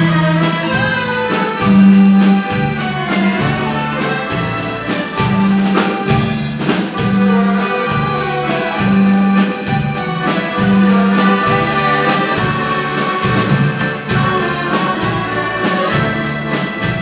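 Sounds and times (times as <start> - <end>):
accordion orchestra dance tune: 0.0 - 17.0
bass line: 0.0 - 17.0
drum and cymbal hits: 0.0 - 17.0.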